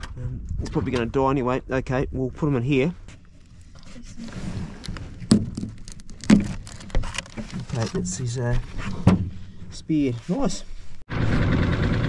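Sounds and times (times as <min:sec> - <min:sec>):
soft rustling: 0:03.0 - 0:11.1.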